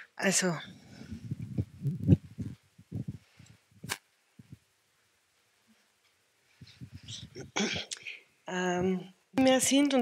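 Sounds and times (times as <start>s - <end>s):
muffled thumps and rumbles: 0.7s - 4.6s, 6.6s - 7.9s.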